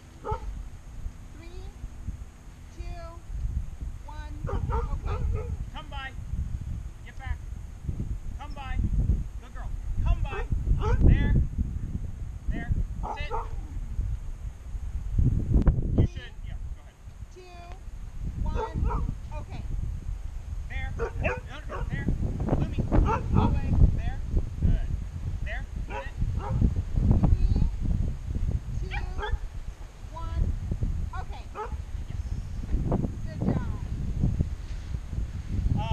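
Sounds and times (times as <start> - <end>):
dog barking: 0.2 - 0.5, 4.5 - 5.6, 10.3 - 11.0, 13.0 - 13.6, 18.6 - 19.1, 21.0 - 21.9, 23.0 - 23.6, 25.9 - 26.6, 28.9 - 29.4, 31.5 - 31.8
dog yipping: 0.2 - 0.5.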